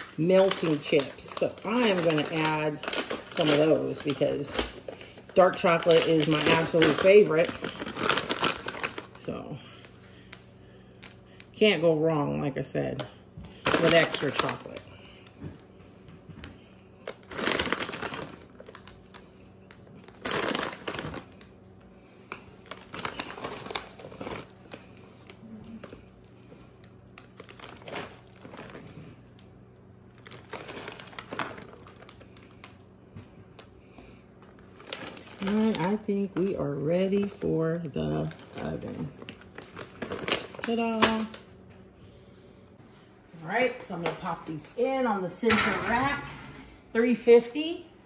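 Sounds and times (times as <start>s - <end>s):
woman's voice: 0.0s - 4.7s, 5.3s - 7.9s, 9.2s - 9.8s, 11.5s - 15.0s, 35.4s - 39.2s, 40.6s - 41.4s, 43.3s - 48.0s
plastic bag crinkling: 0.0s - 11.6s, 13.5s - 15.4s, 16.9s - 21.6s, 22.3s - 41.5s.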